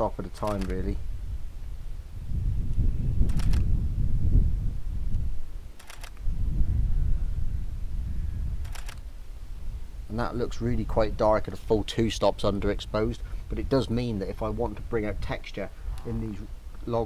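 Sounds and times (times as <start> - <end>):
wind rumble on microphone: 0.0 - 17.0
camera shutter double click: 0.5 - 0.7, 3.3 - 3.6, 5.8 - 6.2, 8.6 - 9.0.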